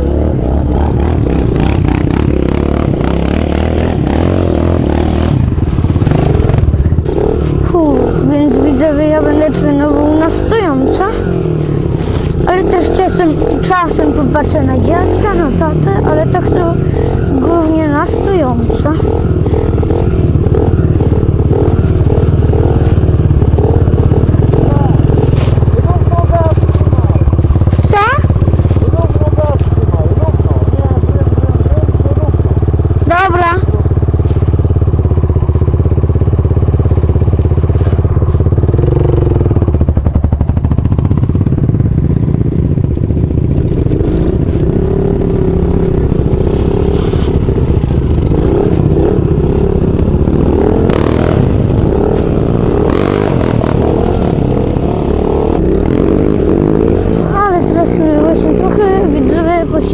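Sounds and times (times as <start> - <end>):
dirt bike engine running: 0.0 - 59.9
quad engine running: 0.0 - 59.9.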